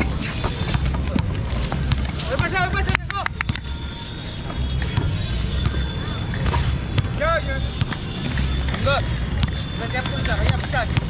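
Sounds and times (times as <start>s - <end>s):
skate wheels rumbling on concrete: 0.0s - 3.2s.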